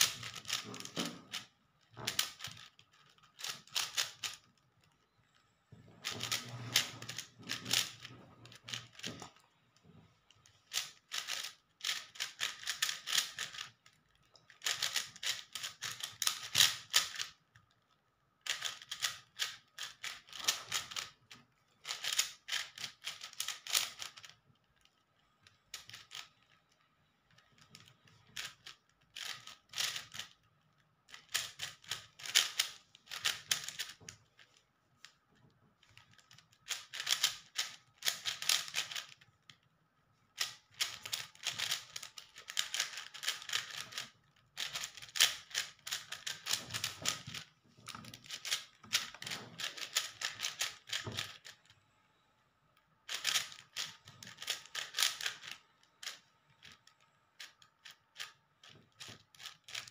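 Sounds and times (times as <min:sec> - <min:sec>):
puzzle cube clicking: 0:00.0 - 0:01.5, 0:02.1 - 0:04.5, 0:10.6 - 0:13.8, 0:14.5 - 0:17.4, 0:18.4 - 0:21.2, 0:21.8 - 0:24.3, 0:27.6 - 0:30.4, 0:31.1 - 0:34.0, 0:36.0 - 0:39.2, 0:40.4 - 0:47.4, 0:48.1 - 0:51.6, 0:53.1 - 0:56.7.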